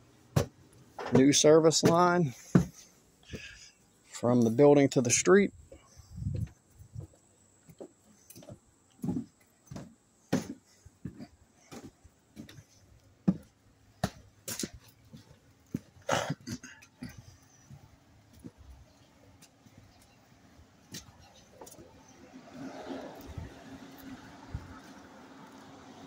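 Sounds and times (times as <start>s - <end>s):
footsteps on concrete: 0.3s - 3.6s, 5.7s - 20.2s, 20.8s - 21.9s
footsteps on wooden deck: 0.3s - 4.2s, 5.6s - 25.8s.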